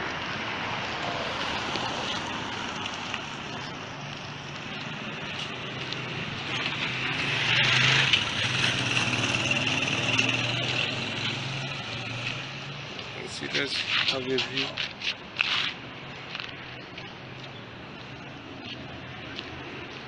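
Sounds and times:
road noise: 0:00.0 - 0:20.0
vehicle engine hum: 0:00.0 - 0:20.0.

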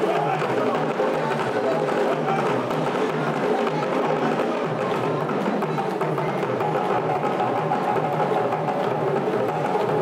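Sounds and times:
hand drums playing dance rhythm: 0:00.0 - 0:10.0.

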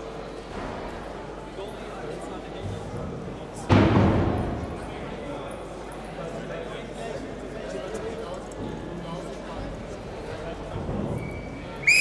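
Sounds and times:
hall murmur with distant voices: 0:00.0 - 0:12.0.

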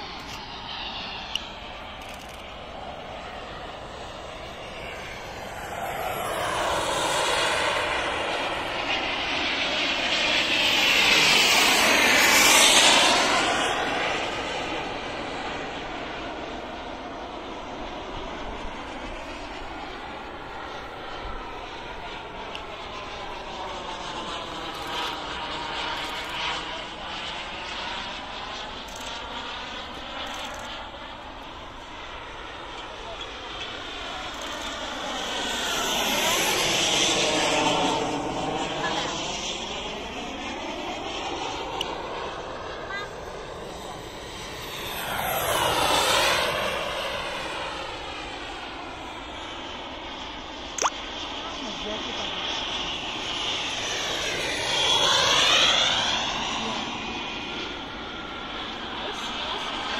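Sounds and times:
model jet turbine engine passing: 0:00.0 - 0:59.9.

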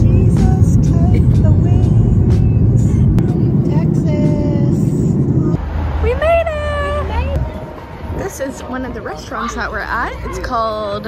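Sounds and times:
jet engine cabin rumble: 0:00.0 - 0:05.6.

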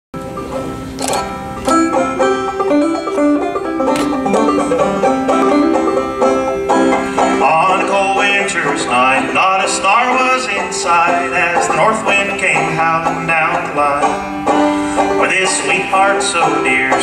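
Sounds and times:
banjo plucked notes: 0:00.2 - 0:17.0
sharp banjo strum: 0:00.2 - 0:17.0.

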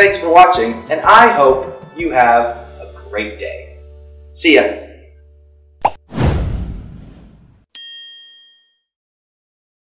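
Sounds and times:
bright bell-like ding: 0:07.8 - 0:08.9.

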